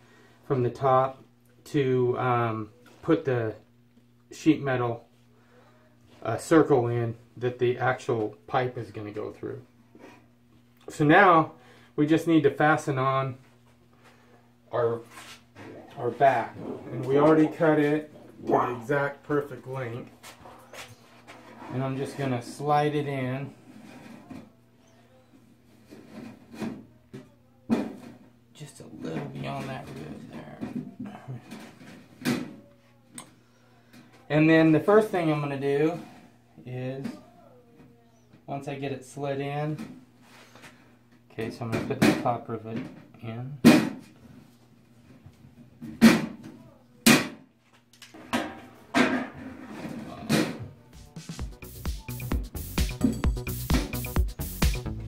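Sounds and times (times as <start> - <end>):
background music with a beat: 51.0 - 55.0.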